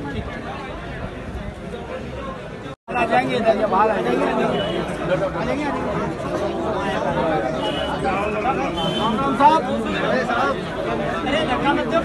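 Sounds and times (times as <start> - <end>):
crowd of men talking: 0.0 - 12.0.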